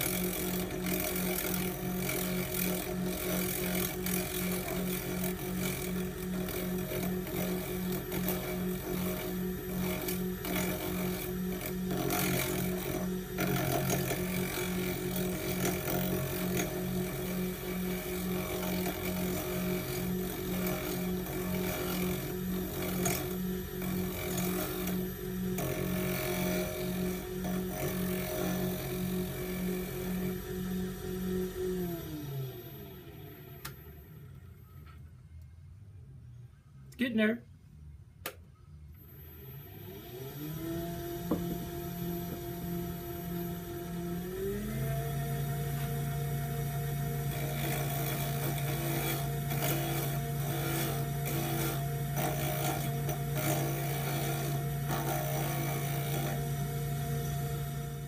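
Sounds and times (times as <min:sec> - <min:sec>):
lathe motor humming: 0:00.0 - 0:34.3, 0:39.0 - 0:58.0.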